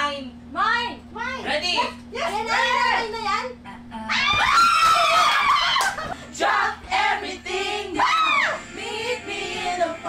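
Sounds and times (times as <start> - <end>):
woman speaking excitedly: 0.0 - 3.6
young women screaming: 4.1 - 6.1, 8.0 - 8.6.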